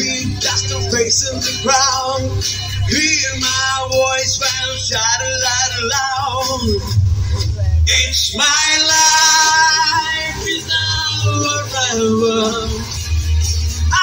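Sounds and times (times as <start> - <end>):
man singing: 0.0 - 7.0, 7.8 - 13.2
backing track with steady bass: 0.0 - 14.0.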